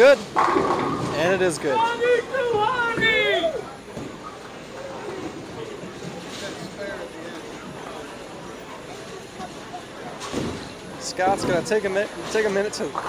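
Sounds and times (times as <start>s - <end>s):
bowling balls rolling: 0.0s - 6.8s
background chatter: 0.0s - 13.0s.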